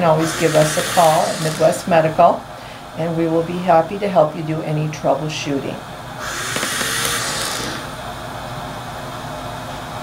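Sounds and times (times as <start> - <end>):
ventilator air rush: 0.0 - 3.9, 5.4 - 10.0
ventilator running hum: 0.0 - 10.0.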